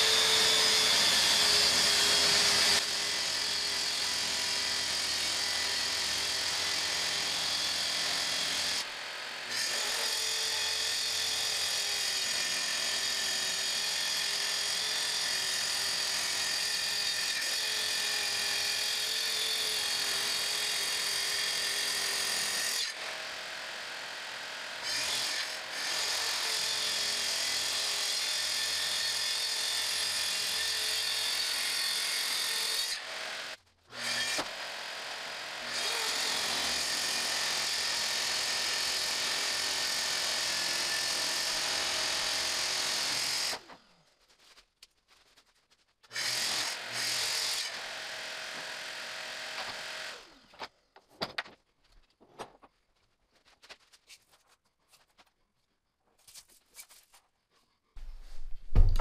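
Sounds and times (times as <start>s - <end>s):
track saw cutting: 0.0s - 43.8s, 46.1s - 50.5s.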